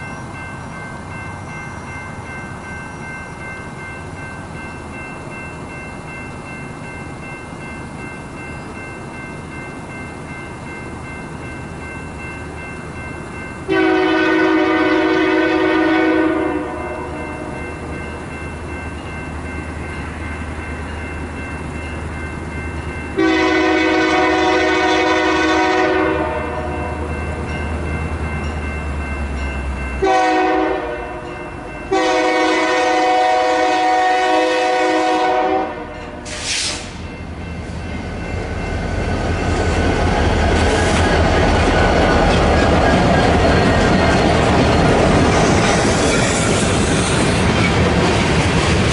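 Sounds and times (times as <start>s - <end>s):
train rumble: 0.0s - 48.9s
locomotive horn blasts: 13.7s - 17.6s, 23.2s - 27.0s, 30.0s - 37.0s
brief hiss: 36.3s - 37.0s.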